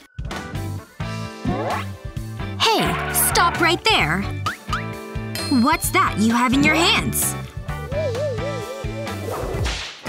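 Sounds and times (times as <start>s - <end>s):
soft background music: 0.0s - 9.7s.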